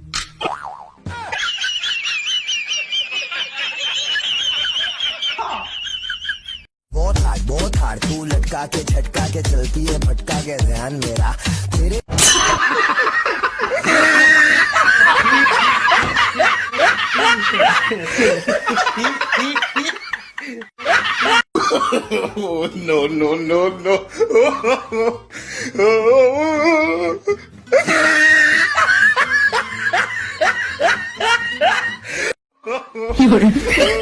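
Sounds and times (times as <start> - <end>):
people snickering and chuckling: 1.1 - 6.7, 12.4 - 22.6, 27.7 - 32.1, 32.7 - 34.0
person laughing: 1.1 - 6.7, 12.4 - 23.0, 27.3 - 34.0.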